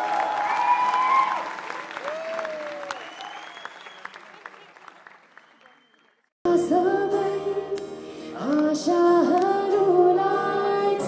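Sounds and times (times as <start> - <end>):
high-pitched whoops: 0.0 - 4.2
audience applauding and cheering: 0.0 - 6.3.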